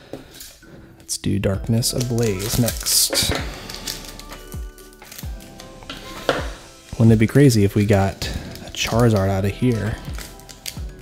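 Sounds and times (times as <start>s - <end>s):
background music with steady beat: 0.0s - 11.0s
scissors snipping foil pack: 1.8s - 11.0s.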